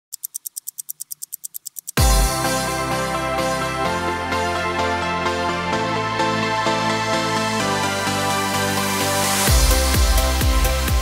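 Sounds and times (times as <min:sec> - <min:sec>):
rapid high-pitched ticking: 0:00.1 - 0:02.1
electronic music: 0:00.1 - 0:11.0.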